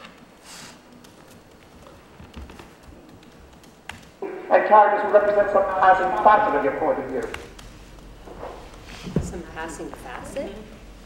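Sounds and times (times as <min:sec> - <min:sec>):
laptop keys clicking: 0:00.0 - 0:04.2, 0:06.0 - 0:08.8.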